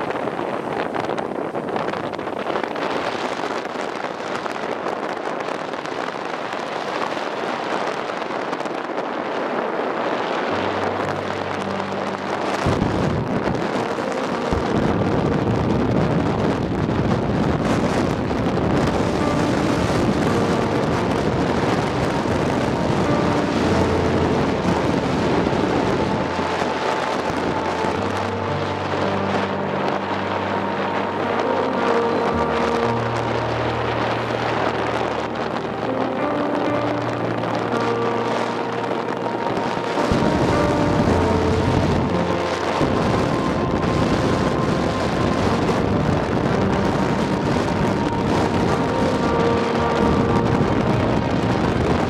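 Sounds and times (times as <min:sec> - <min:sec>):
road noise: 0:00.0 - 0:52.0
wind rushing over microphone: 0:00.0 - 0:52.0
music with held notes: 0:08.5 - 0:52.0.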